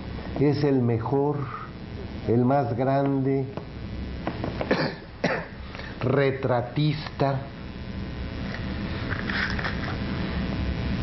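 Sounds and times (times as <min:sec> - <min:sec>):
person coughing: 0:04.6 - 0:05.6.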